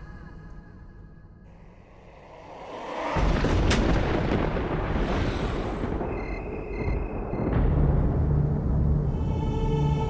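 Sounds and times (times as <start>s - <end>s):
deep rumbling boom: 3.0s - 9.0s
sharp crack: 3.2s - 5.0s
background music: 7.1s - 10.0s.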